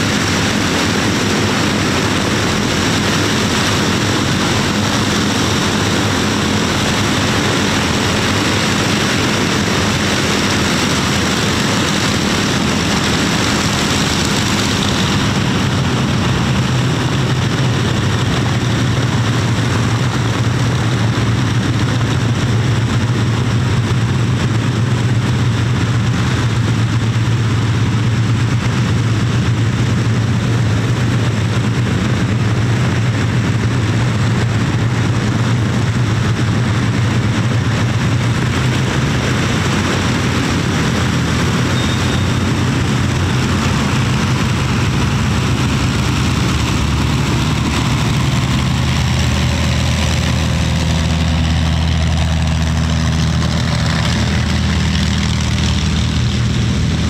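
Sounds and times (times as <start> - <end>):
propeller aircraft engines droning: 0.0 - 57.0.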